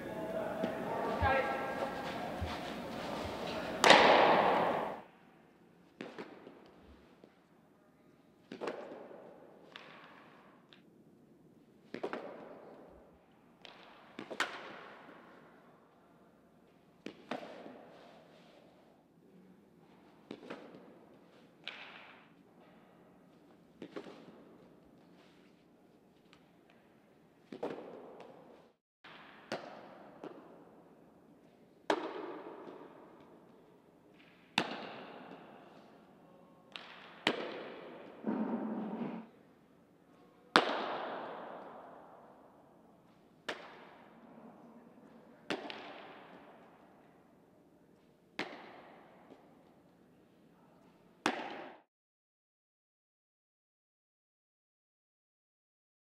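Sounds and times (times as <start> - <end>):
softballs knocking on catcher's gear: 0.6 - 5.0, 31.9 - 33.3, 40.5 - 41.7, 48.4 - 49.5
softball smacking into glove with echo: 3.7 - 5.0.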